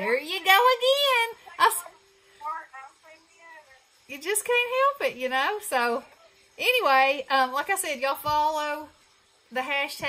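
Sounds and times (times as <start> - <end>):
woman talking: 0.0 - 10.0.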